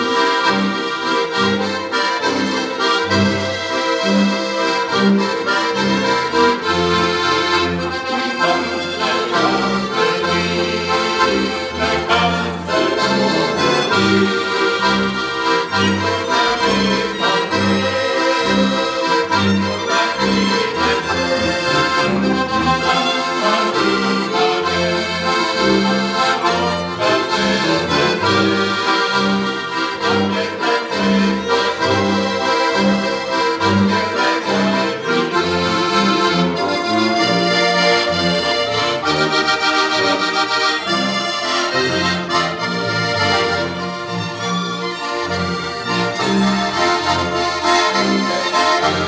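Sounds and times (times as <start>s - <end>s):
accordions playing lively tune: 0.0s - 49.0s
bowed double bass: 0.0s - 49.0s
violin: 0.0s - 49.0s.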